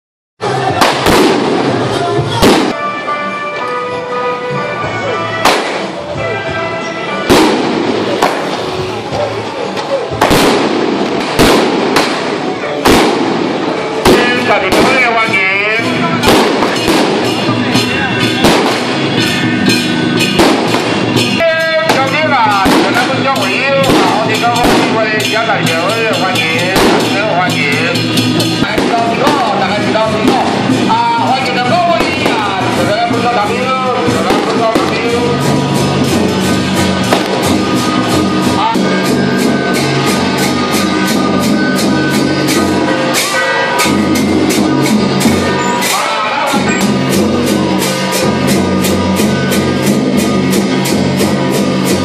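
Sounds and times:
loud bangs: 0.4s - 2.9s, 5.4s - 6.2s, 7.2s - 9.5s, 10.1s - 52.0s
firecrackers crackling: 0.4s - 3.9s, 5.3s - 6.4s, 7.0s - 52.0s
drums: 0.4s - 52.0s
procession music: 1.2s - 52.0s.

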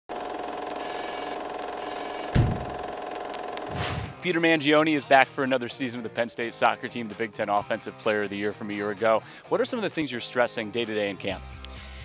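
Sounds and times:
deep bass hit: 2.4s - 2.8s
rising whoosh: 3.7s - 4.2s.

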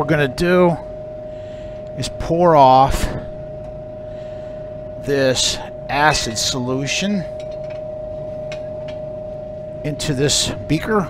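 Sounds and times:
steady high hum: 0.0s - 11.0s.

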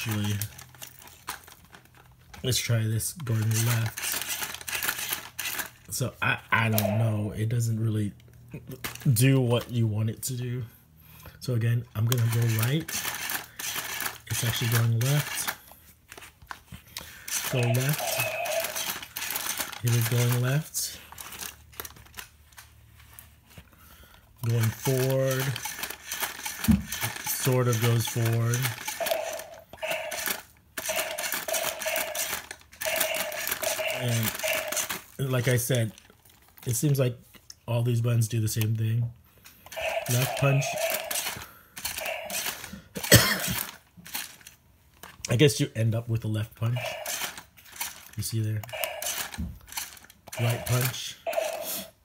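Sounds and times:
toy robot motor whirring: 2.7s - 5.8s, 12.0s - 15.6s, 17.2s - 22.2s, 24.4s - 35.5s, 39.6s - 45.1s, 46.8s - 52.0s.

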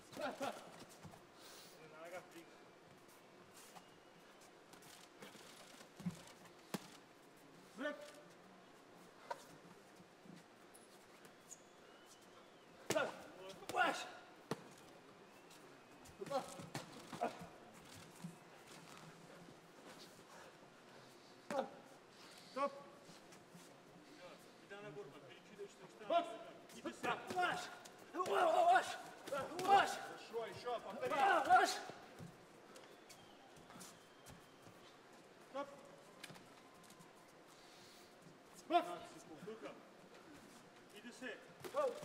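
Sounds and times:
people shouting: 27.0s - 30.2s, 30.9s - 32.0s.

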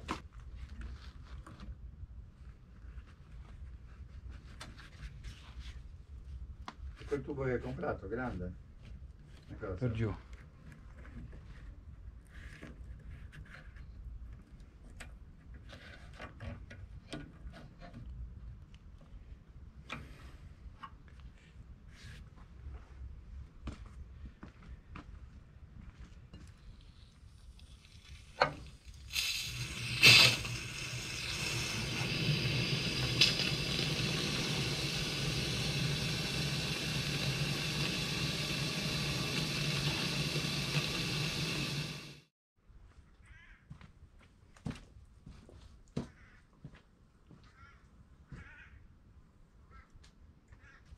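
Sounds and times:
water rushing from a hose: 26.9s - 42.3s.

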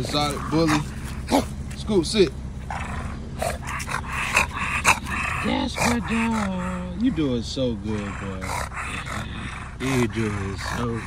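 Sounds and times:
dog panting hard: 0.0s - 1.6s, 2.6s - 11.0s.

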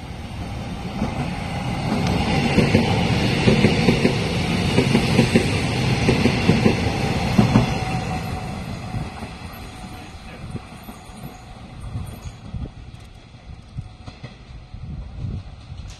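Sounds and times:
electric train passing: 0.0s - 15.9s.

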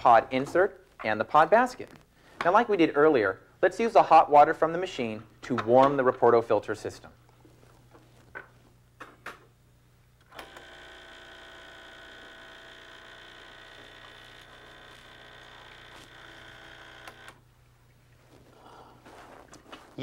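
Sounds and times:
low electrical mains hum: 0.0s - 20.0s
espresso machine pump buzzing: 10.2s - 17.5s.

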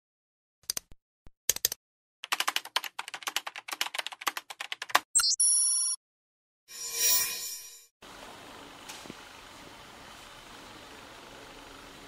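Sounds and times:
bell-like ringing tone: 6.7s - 7.9s.

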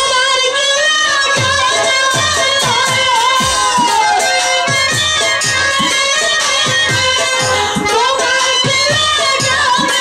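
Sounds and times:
live band playing: 0.0s - 10.0s
woman singing through sound system: 0.0s - 10.0s
hand-drum strokes: 1.4s - 10.0s.

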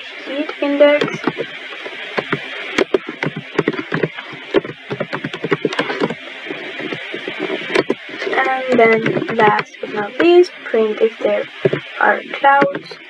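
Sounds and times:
computer keyboard typing: 2.2s - 6.2s.

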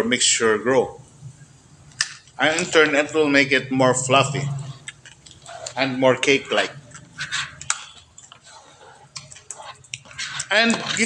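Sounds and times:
spoon stirring thick batter: 4.3s - 11.0s.

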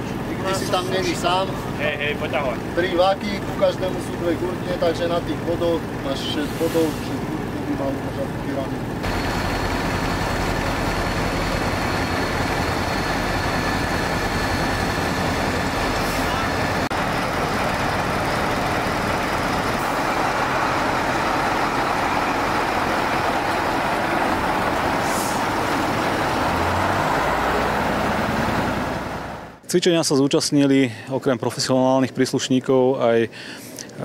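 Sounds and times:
heavy truck engines running: 0.0s - 29.6s.

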